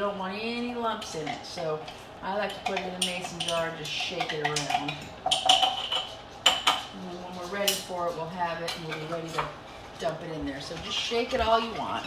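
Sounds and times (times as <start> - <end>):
kitchenware clinks and knocks: 2.6 - 6.9.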